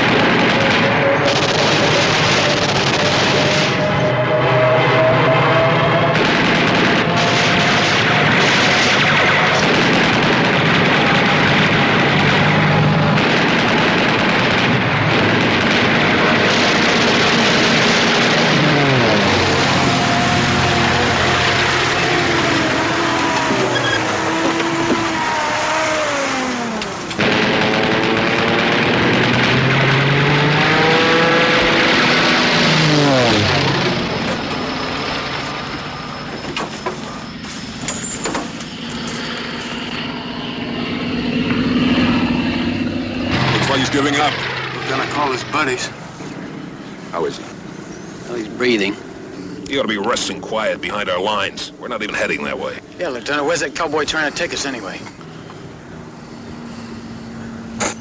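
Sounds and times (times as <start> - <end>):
vehicle engine running hard: 0.0 - 58.0.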